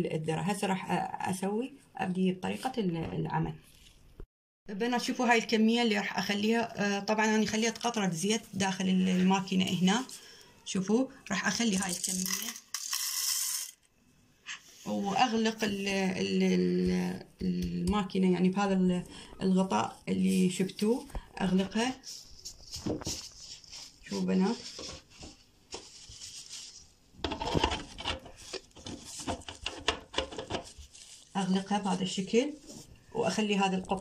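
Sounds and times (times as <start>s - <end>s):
plastic glove rustling on plastic lid: 5.8s - 10.2s, 18.0s - 34.0s
kernels rattling on metal: 11.8s - 13.8s.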